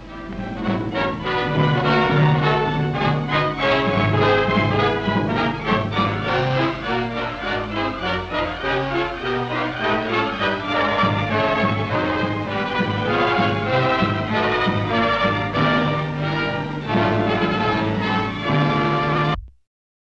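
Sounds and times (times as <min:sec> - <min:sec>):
orchestral film music: 0:00.0 - 0:19.4.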